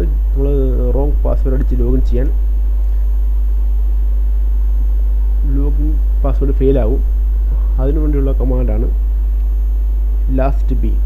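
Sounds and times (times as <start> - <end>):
faint thin steady tones: 0.0 - 11.0
loud electrical hum: 0.0 - 11.0.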